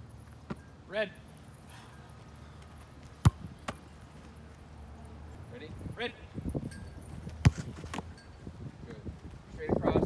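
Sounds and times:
soccer ball kicked thump: 3.2 - 3.8, 7.4 - 8.0.

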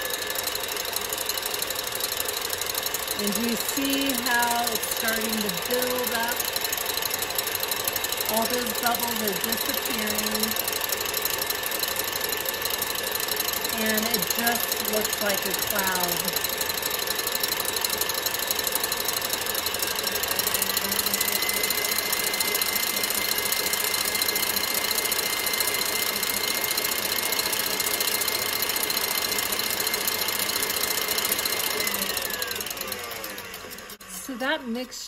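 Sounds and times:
stand mixer whirring: 0.0 - 35.0.

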